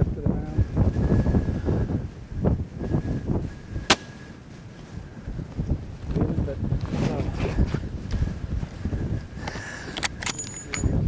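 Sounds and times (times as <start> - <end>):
rifle shot: 3.9 - 4.1.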